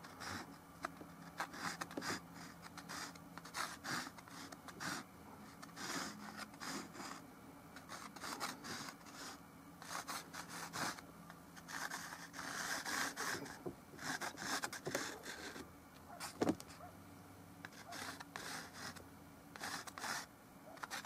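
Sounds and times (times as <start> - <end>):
chalk scraping on canvas: 1.3 - 7.2, 7.8 - 11.0, 11.6 - 15.6, 17.7 - 19.0, 19.6 - 21.0.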